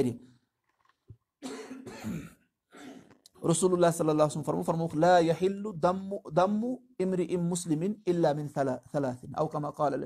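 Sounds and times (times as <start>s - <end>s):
man clearing his throat: 1.4s - 3.2s.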